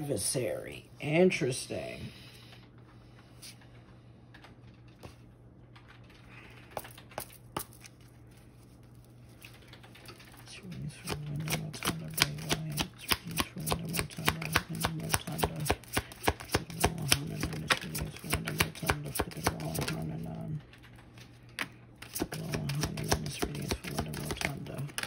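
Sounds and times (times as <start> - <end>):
cards being shuffled: 5.9 - 25.0.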